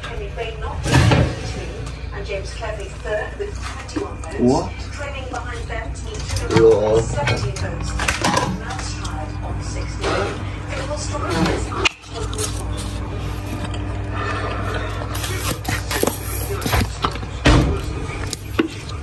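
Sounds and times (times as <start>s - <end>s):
kitchen appliance humming: 0.0s - 19.0s.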